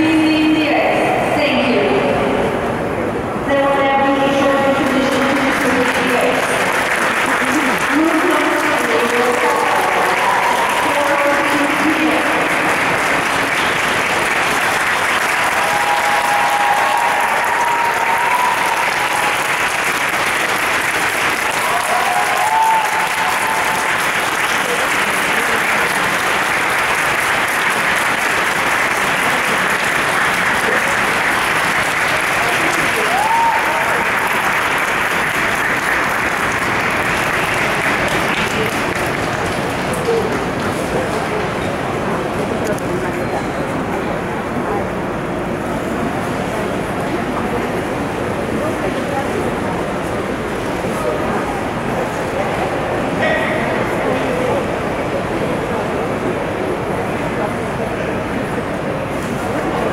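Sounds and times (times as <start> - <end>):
audience applauding: 4.6 - 41.5.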